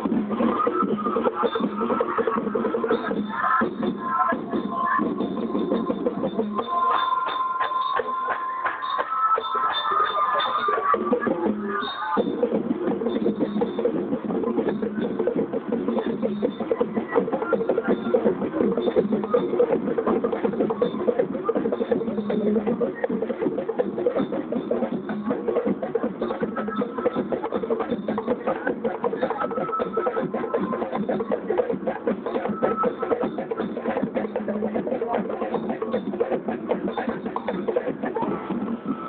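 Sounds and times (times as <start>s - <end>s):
steady drum strokes: 0.0s - 39.0s
marching band playing: 12.4s - 39.0s.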